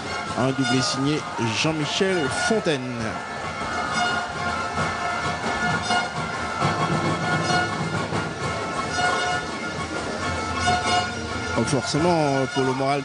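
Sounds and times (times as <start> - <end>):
horns blowing long notes: 0.0 - 13.0
stadium crowd noise: 0.0 - 13.0.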